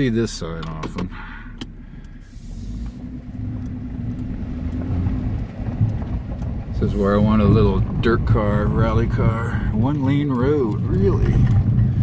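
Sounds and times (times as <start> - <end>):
engine drone: 0.0 - 12.0
faint ticks: 0.6 - 12.0
tyres rumbling on gravel: 2.4 - 12.0.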